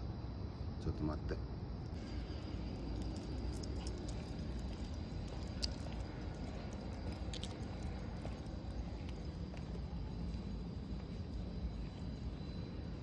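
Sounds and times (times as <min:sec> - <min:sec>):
insects chirring: 0:00.0 - 0:13.0
low outdoor rumble: 0:00.0 - 0:13.0.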